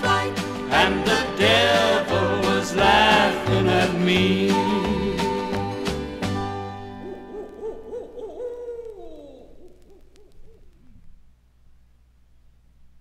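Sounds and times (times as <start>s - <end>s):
owl-like hooting sound effect: 6.8s - 11.1s.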